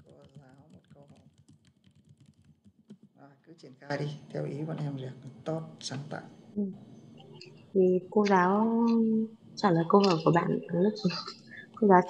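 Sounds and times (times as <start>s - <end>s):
keyboard typing: 0.0s - 2.8s.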